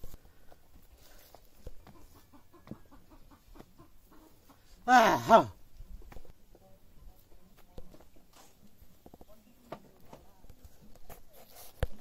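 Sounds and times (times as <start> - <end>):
chickens clucking softly: 1.6 - 4.8.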